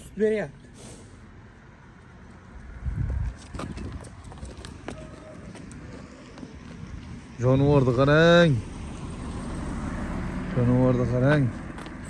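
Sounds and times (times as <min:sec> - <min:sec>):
cow hooves clicking on pavement: 0:02.0 - 0:08.1, 0:11.1 - 0:12.0.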